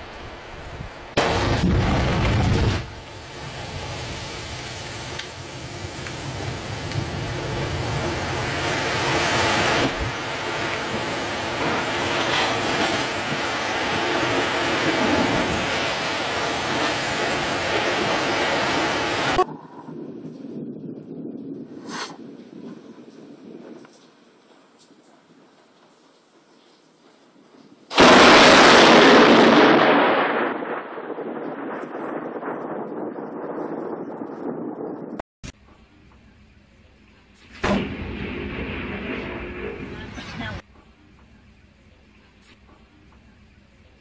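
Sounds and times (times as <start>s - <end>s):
thunderclap and rumble: 0.0s - 24.0s, 27.9s - 35.2s, 37.5s - 40.7s.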